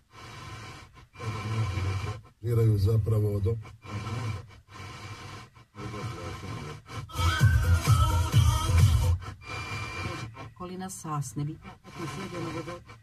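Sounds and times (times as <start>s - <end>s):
radio scanning stations: 1.2s - 4.4s, 5.8s - 13.0s
music with pulsing beat: 7.1s - 9.4s.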